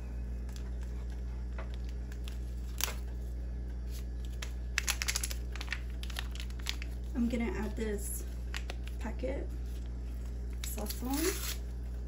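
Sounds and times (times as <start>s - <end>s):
steady low hum: 0.0s - 12.0s
foil packet crinkling: 0.4s - 9.1s, 9.7s - 12.0s.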